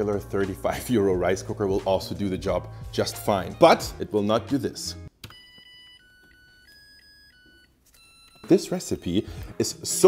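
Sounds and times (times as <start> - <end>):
rice cooker beep melody: 5.2 - 10.0.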